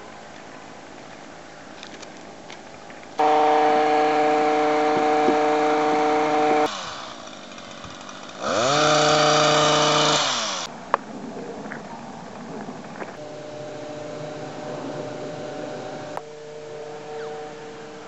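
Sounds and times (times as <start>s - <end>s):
hedge trimmer motor hum: 3.2s - 10.7s, 13.2s - 18.0s.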